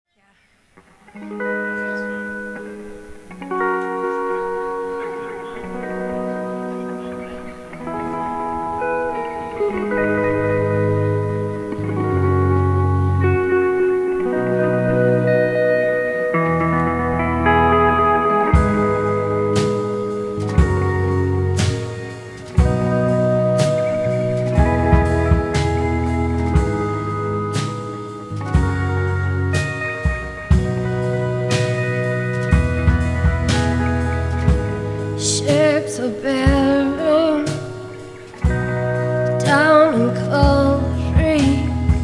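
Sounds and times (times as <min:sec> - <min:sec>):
sustained electric guitar chords: 0:00.8 - 0:42.0
deep bass notes: 0:05.6 - 0:35.8, 0:36.5 - 0:42.0.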